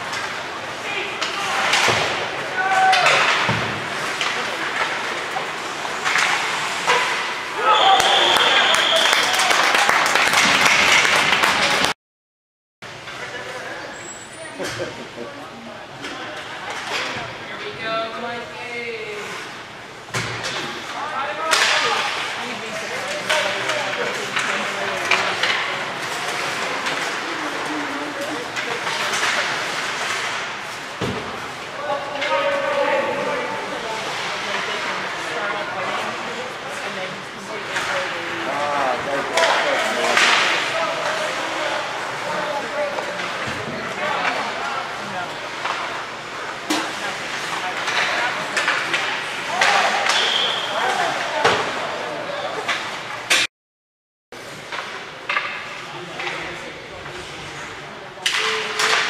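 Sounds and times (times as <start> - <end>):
hockey sticks and puck clacking: 0.0 - 11.9, 20.1 - 32.8, 33.7 - 51.9, 52.6 - 53.5, 54.4 - 56.7, 58.2 - 59.0.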